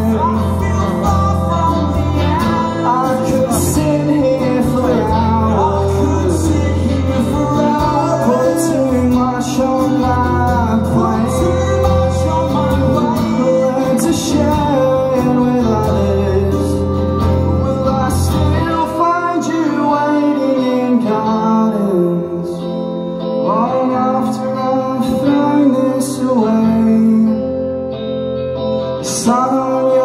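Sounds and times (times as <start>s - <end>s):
deep bass notes: 0.0s - 19.7s
acoustic guitars strummed and picked: 0.0s - 30.0s.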